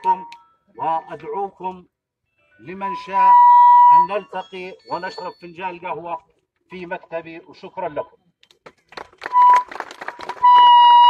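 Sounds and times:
megaphone high tone: 0.0 - 1.2, 2.6 - 6.1.

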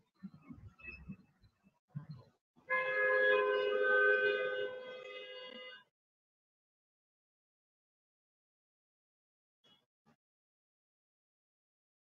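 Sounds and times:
held horn-like tone: 2.7 - 5.9.

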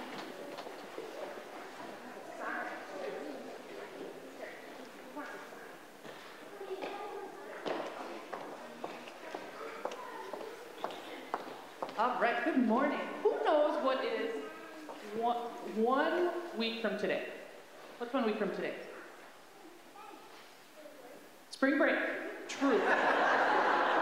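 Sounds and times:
faint murmuring: 0.0 - 12.0, 13.0 - 16.7
children's footsteps on hard floor: 0.0 - 12.5, 14.4 - 16.6.

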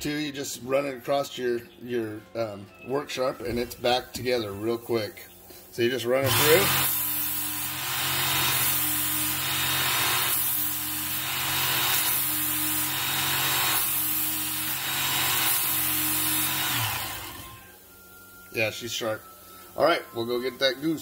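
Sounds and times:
belt sharpener motor whining: 6.2 - 17.7.

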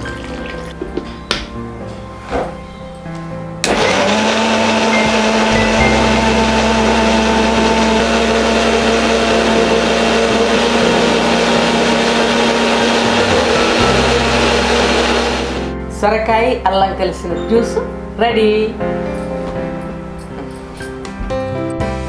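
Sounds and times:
mixer-grinder whirring: 3.6 - 15.7.

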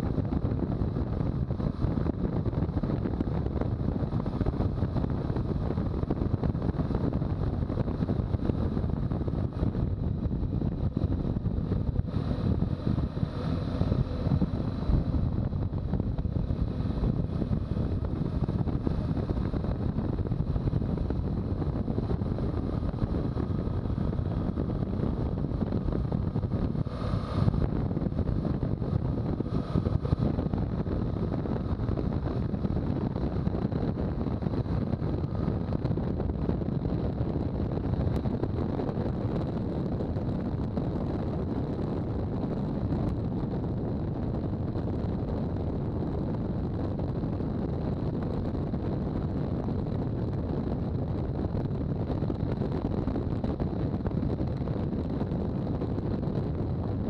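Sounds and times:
motorcycle engine: 0.0 - 36.4
wind rumble on microphone: 0.0 - 57.0.

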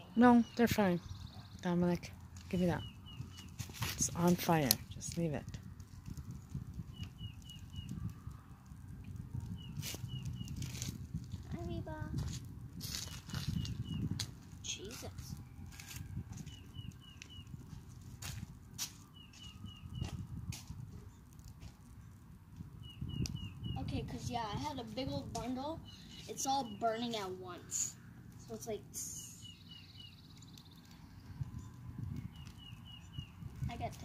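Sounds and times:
bird chirping: 0.0 - 4.7, 6.9 - 8.1, 9.5 - 10.8, 13.0 - 14.2, 16.4 - 17.8, 19.0 - 20.2, 22.8 - 23.9, 25.8 - 27.3, 29.1 - 33.8
fire crackling and popping: 0.0 - 34.0.

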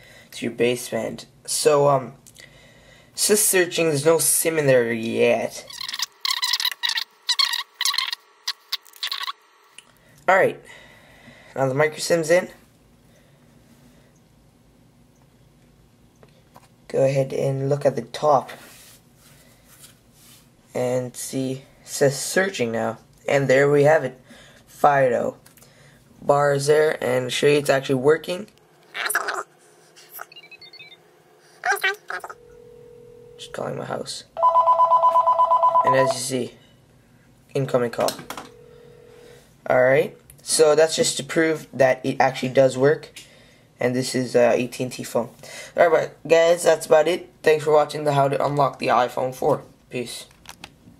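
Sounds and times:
phone keypad beeps: 34.4 - 36.2.

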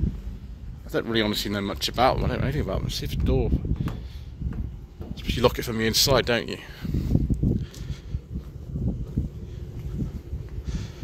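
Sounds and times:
wind buffeting microphone: 0.0 - 11.0
footsteps on concrete: 3.7 - 5.6, 6.9 - 11.0.

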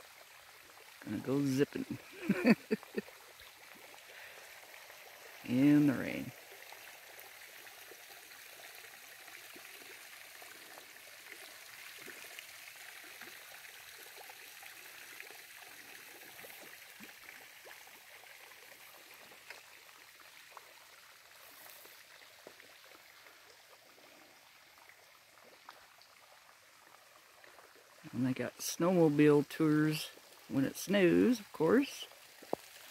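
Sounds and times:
light rain hissing: 0.0 - 32.9
water drips ticking: 0.0 - 32.9.

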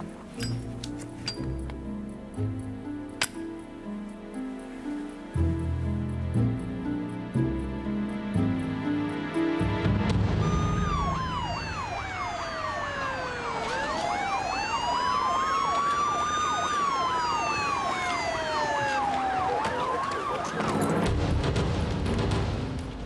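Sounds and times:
police siren yelping: 10.4 - 21.0
police siren wailing: 10.4 - 21.1.

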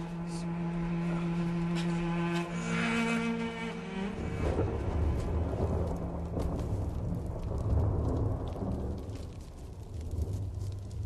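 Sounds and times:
deep steady rumble: 0.0 - 11.0
faint crackles: 0.0 - 11.0.

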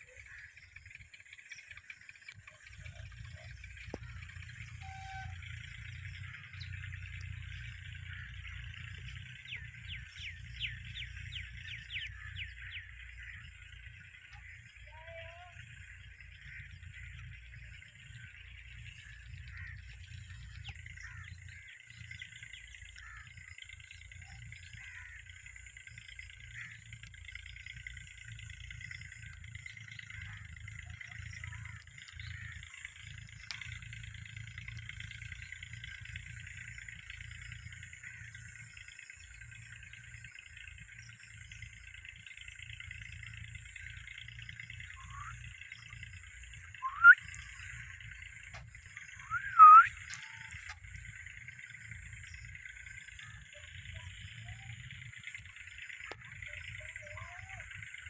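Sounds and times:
small birds chirping: 0.0 - 58.0.

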